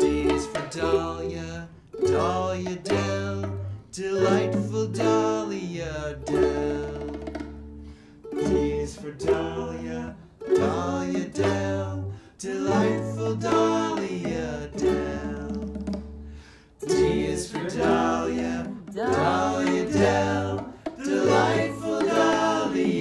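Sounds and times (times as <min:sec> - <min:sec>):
men singing: 0:00.0 - 0:07.3, 0:08.3 - 0:15.8, 0:16.8 - 0:23.0
strummed ukuleles: 0:00.0 - 0:23.0
drum kit: 0:13.4 - 0:23.0.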